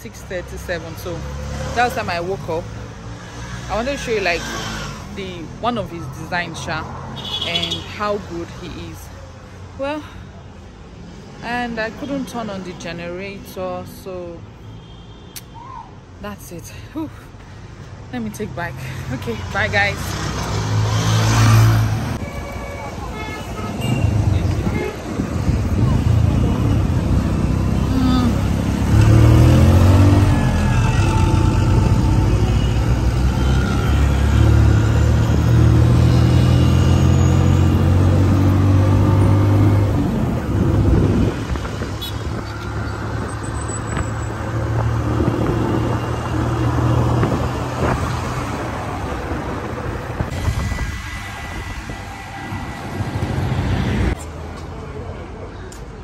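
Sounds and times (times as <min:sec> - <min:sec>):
traffic: 0:00.0 - 0:56.0
vehicle engine droning: 0:24.1 - 0:55.0.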